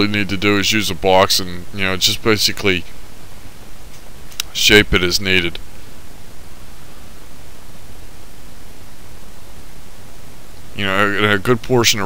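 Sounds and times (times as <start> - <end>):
man speaking: 0.0 - 3.0, 4.5 - 5.6, 10.7 - 12.0
steady background hiss: 0.0 - 12.0.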